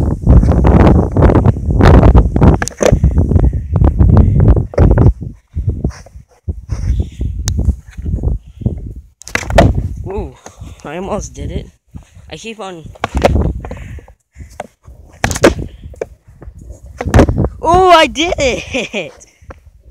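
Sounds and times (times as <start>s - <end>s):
skateboard smacking ground: 9.2s - 9.9s, 12.9s - 13.8s, 14.5s - 17.5s
skateboard wheels rolling on asphalt: 14.5s - 17.6s.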